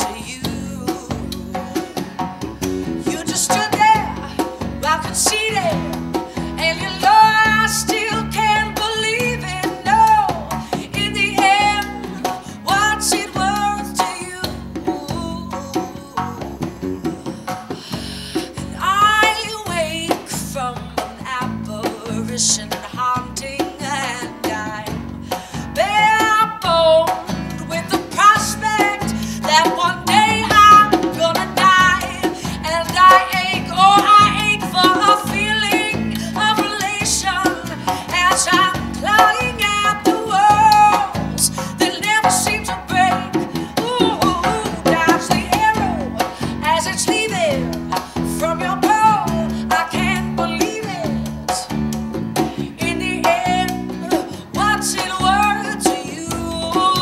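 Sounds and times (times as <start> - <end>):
bass guitar: 0.0 - 57.0
hand drum beat: 0.0 - 57.0
strummed guitar: 0.0 - 57.0
woman singing: 0.0 - 57.0.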